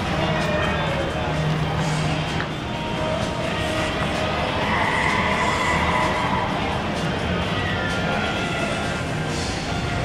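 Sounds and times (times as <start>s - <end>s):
background music: 0.0s - 10.0s
crowd noise: 0.0s - 10.0s.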